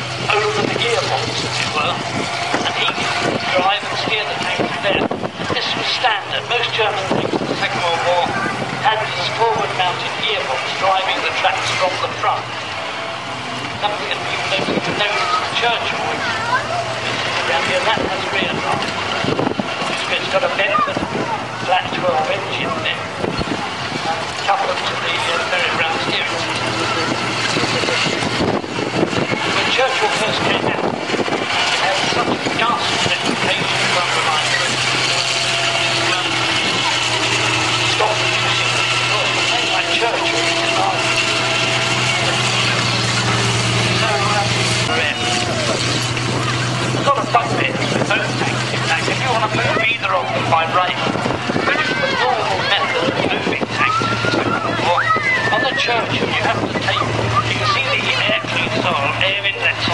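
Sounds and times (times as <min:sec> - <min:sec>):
clatter of tank tracks: 0:00.0 - 0:59.9
tank engine droning: 0:00.0 - 0:59.9.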